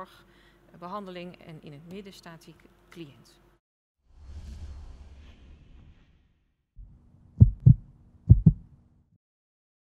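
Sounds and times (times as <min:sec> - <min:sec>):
heartbeat double thump: 0:06.8 - 0:08.7.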